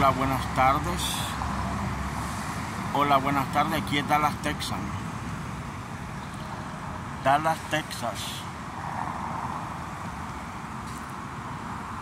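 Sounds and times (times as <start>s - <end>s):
traffic engine rumble: 0.0s - 12.0s.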